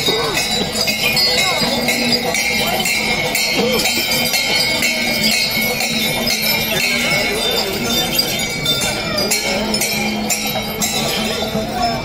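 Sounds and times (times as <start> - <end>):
metallic ringing and jingling: 0.0 - 12.0
murmur of crowd voices: 0.0 - 12.0.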